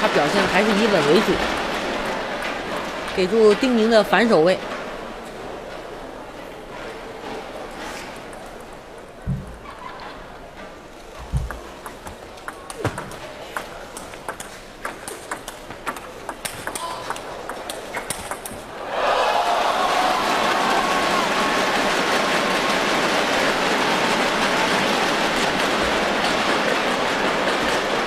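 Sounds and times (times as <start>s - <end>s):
table tennis ball clicking: 11.1s - 18.7s
crowd cheering and applause: 15.3s - 28.0s.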